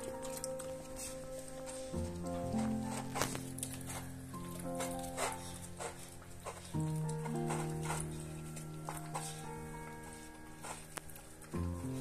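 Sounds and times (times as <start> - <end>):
slow held chords music: 0.0 - 12.0.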